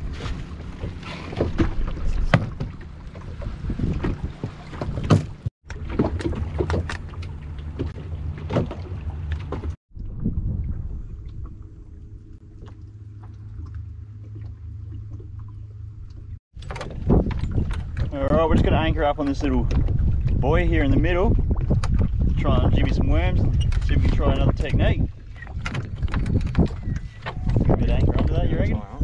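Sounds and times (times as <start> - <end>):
wind on the microphone: 0.0 - 5.5, 9.9 - 12.2, 16.6 - 29.0
water slapping the hull: 0.0 - 29.0.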